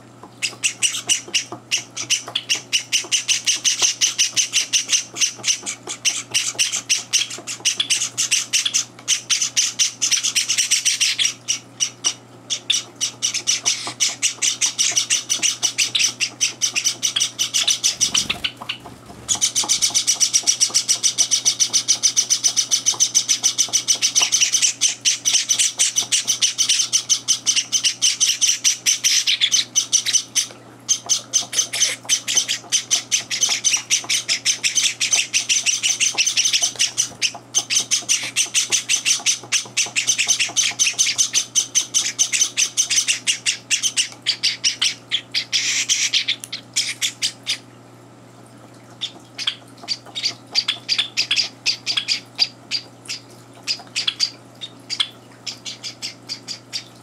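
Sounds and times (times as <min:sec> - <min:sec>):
chicks chirping: 0:00.4 - 0:47.7, 0:49.0 - 0:56.9.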